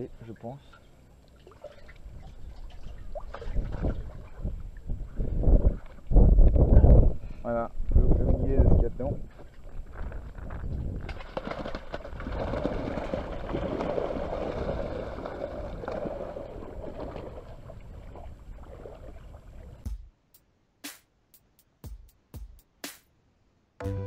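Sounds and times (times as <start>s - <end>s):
water sloshing and splashing: 0.6s - 5.0s, 11.1s - 19.8s
wind rumbling on microphone: 1.9s - 19.8s.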